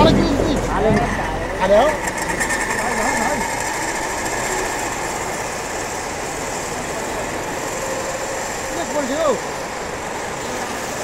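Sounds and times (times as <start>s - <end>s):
pulley whining: 0.0s - 11.0s
river rushing: 0.0s - 11.0s.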